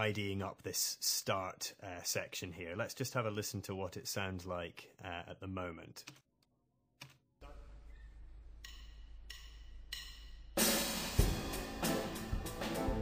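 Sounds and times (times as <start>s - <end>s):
drumstick clicks: 8.6s - 10.4s
band playing loud: 10.6s - 13.0s.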